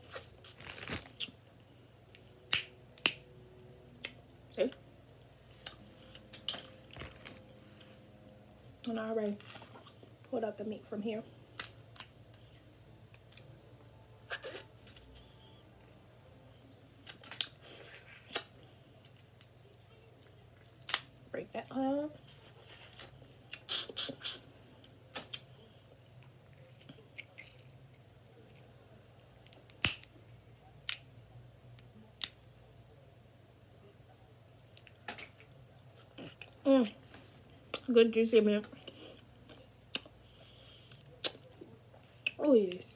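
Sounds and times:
crab shell clicking and snapping: 29.4s - 30.1s.

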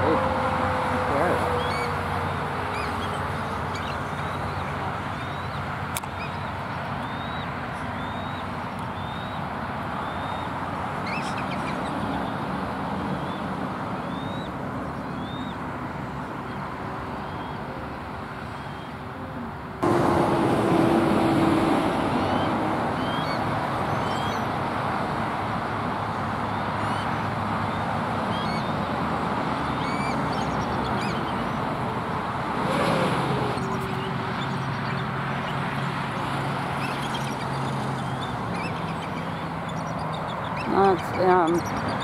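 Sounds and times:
road traffic rumble: 0.0s - 42.0s
small birds chirping: 33.5s - 42.0s.

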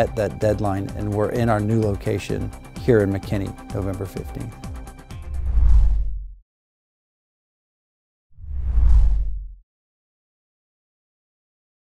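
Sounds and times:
whoosh with deep rumble: 5.2s - 6.4s, 8.4s - 9.6s.

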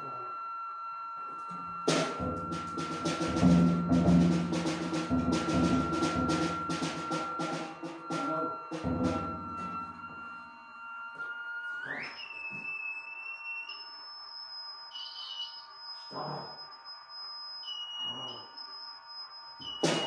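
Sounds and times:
lower electronic tone: 0.0s - 20.0s
high electronic tone gliding upward: 0.1s - 20.0s.

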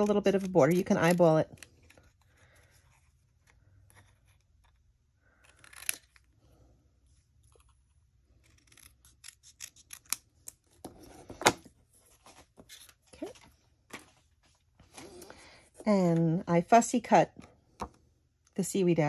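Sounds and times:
scissors snipping cardstock: 0.0s - 2.2s, 8.4s - 10.6s.

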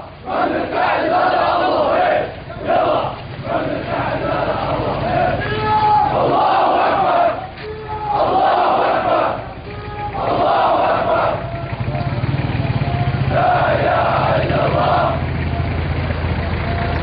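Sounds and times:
crowd of men chanting: 0.0s - 15.8s.

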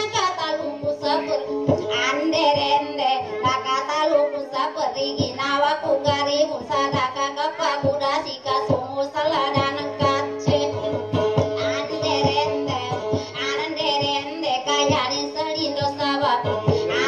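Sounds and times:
high-pitched voice singing: 0.0s - 10.9s, 11.6s - 17.0s
instrumental backing with steady beat: 0.0s - 17.0s.

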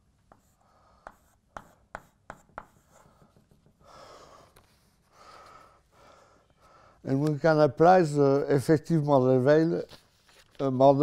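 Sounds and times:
chalk scratching on blackboard: 0.3s - 3.8s
chalk tapping on blackboard: 0.3s - 3.9s.

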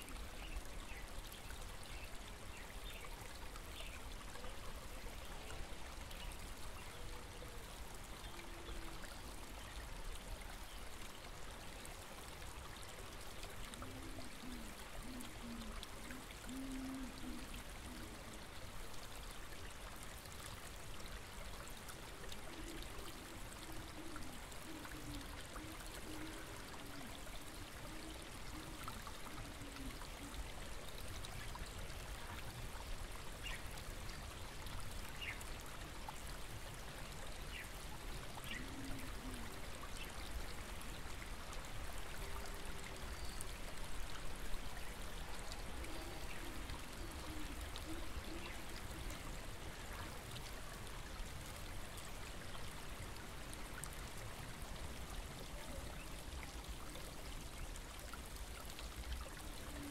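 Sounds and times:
small stream flowing: 0.0s - 59.9s.

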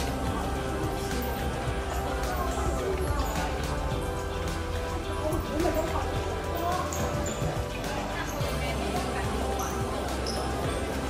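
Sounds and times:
background music: 0.0s - 11.0s
indistinct voices: 0.0s - 11.0s.

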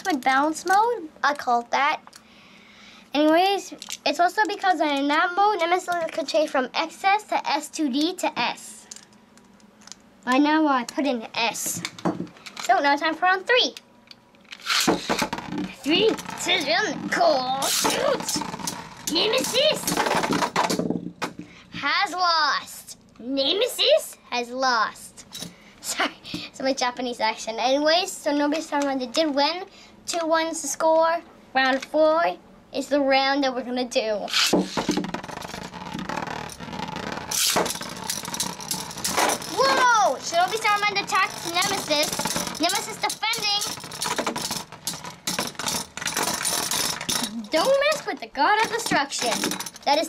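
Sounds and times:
spinning top clattering: 14.4s - 21.4s, 34.3s - 50.0s.

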